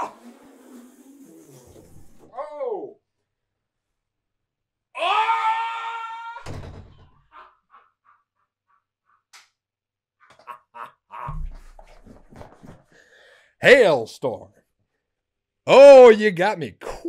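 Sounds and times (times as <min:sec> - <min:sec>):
man shouting: 0:02.4 - 0:03.0, 0:15.7 - 0:17.0
door shutting with a thud: 0:06.4 - 0:07.2
low thump: 0:11.3 - 0:12.3
footsteps: 0:11.3 - 0:12.9.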